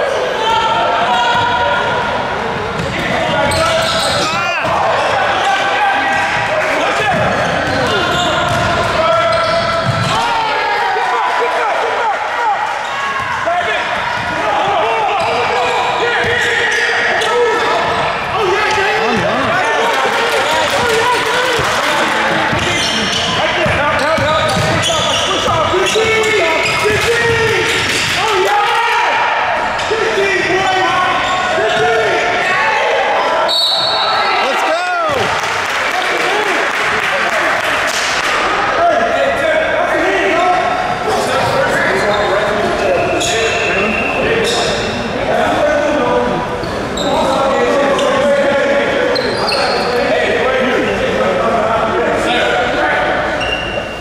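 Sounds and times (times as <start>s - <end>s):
voices echoing in a gym: 0.0s - 54.0s
sneakers squeaking: 0.9s - 6.5s, 7.1s - 10.4s, 20.6s - 28.2s, 31.0s - 32.2s, 33.4s - 35.2s, 41.4s - 45.1s, 46.6s - 48.3s, 49.1s - 50.0s, 53.3s - 54.0s
basketball dribbling: 7.1s - 10.1s, 20.7s - 28.2s
referee's whistle: 33.5s - 34.5s.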